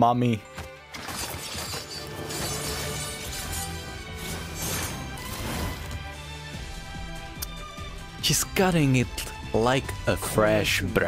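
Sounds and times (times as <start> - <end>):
fight scene music: 0.4 - 11.0.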